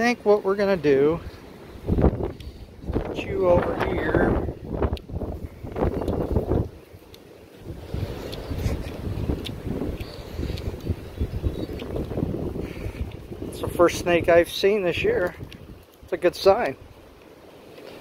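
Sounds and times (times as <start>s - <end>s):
wind buffeting microphone: 0.8s - 17.1s.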